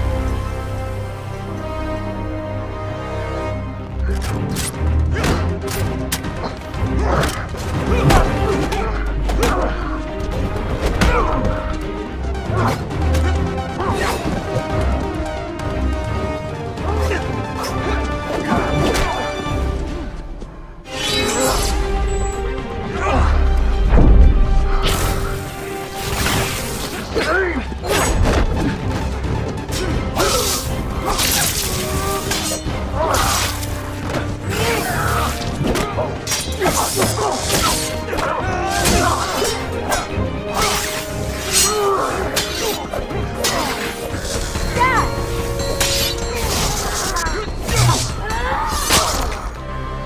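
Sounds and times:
dramatic music with pulsing beat: 0.0 - 50.0.

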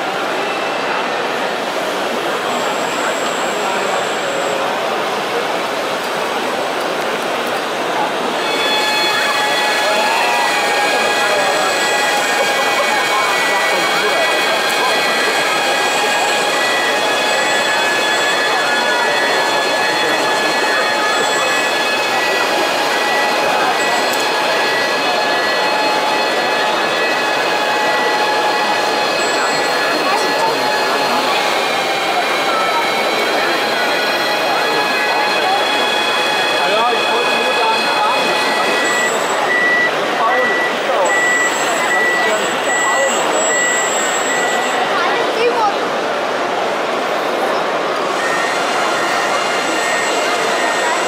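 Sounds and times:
crowd chatter in a hall: 0.0 - 51.0
electric motors whining: 8.4 - 39.7.

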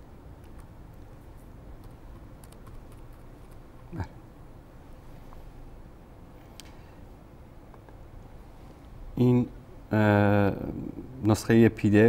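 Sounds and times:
computer keyboard keys clicking: 1.8 - 3.6.

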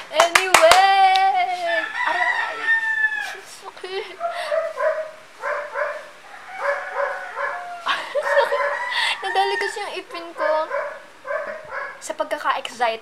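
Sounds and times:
young woman laughing: 3.7 - 4.8, 7.8 - 9.6.

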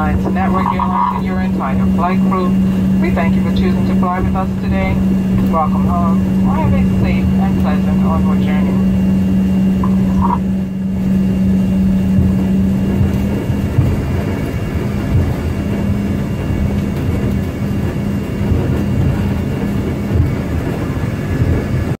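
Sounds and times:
jet engine hum: 0.0 - 22.0
wheels rumbling on taxiway: 0.0 - 22.0.

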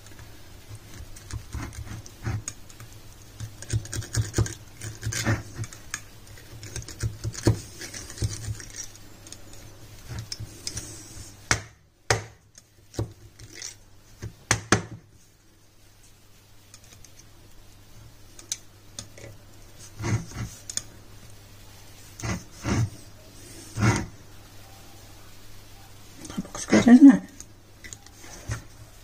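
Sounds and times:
faint low hum: 0.0 - 29.0.

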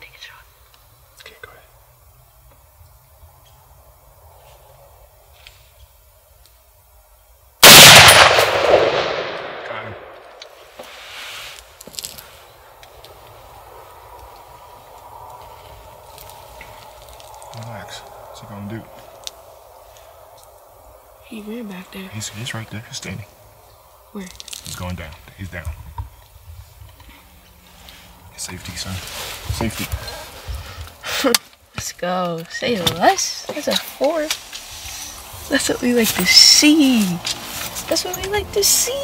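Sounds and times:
rifle shot: 7.6 - 10.4.

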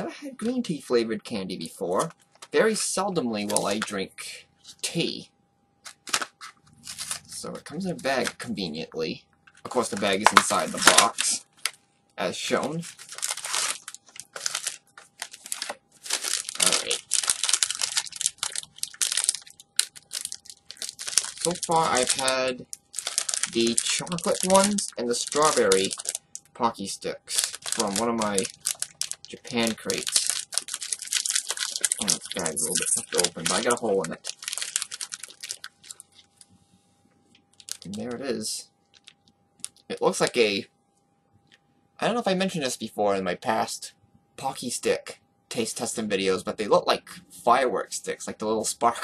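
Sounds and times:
foil snack bag crinkling: 9.7 - 11.8, 12.8 - 26.6, 27.2 - 36.4, 37.6 - 38.1.

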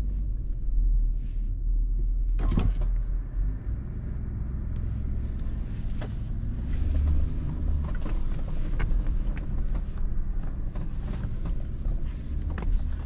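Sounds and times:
engine drone inside car: 0.0 - 13.0.

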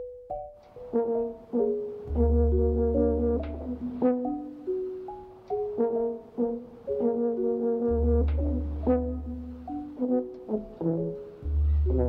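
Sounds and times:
marimba notes: 0.0 - 12.0.

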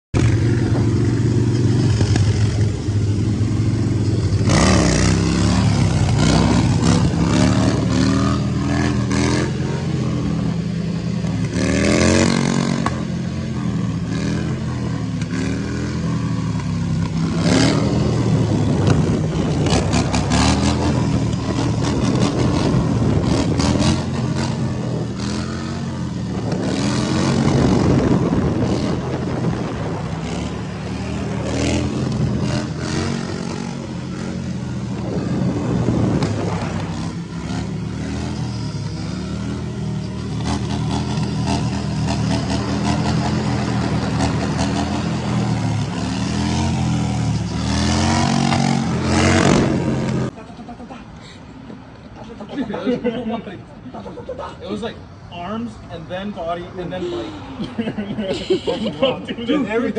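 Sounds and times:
motorcycle engine revving: 0.1 - 50.4.

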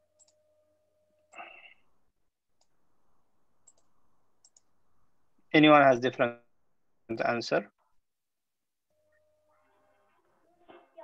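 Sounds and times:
computer mouse clicks: 3.6 - 4.8.

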